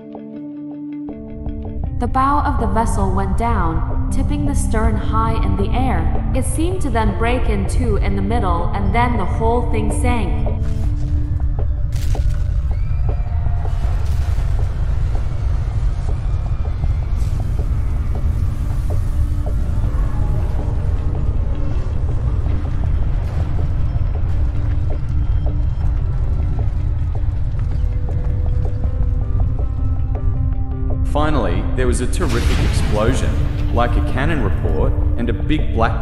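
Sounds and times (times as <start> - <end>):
background music: 0.0 - 36.0
low rumble: 1.8 - 36.0.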